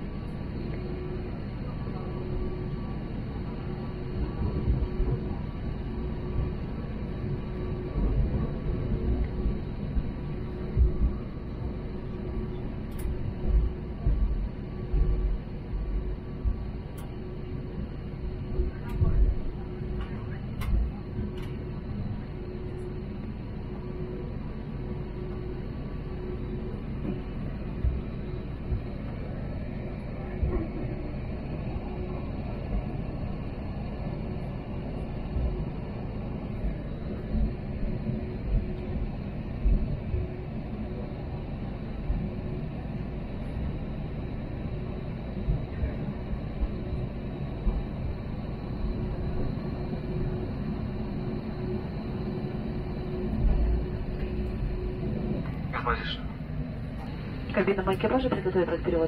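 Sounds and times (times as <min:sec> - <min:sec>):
aircraft engines idling rumble: 0:00.0 - 0:59.0
faint steady hum: 0:00.0 - 0:59.0.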